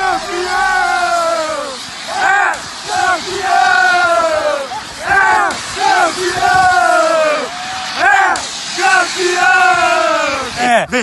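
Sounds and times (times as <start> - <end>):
young men yelling in celebration: 0.0 - 10.8
noisy background: 0.0 - 11.0.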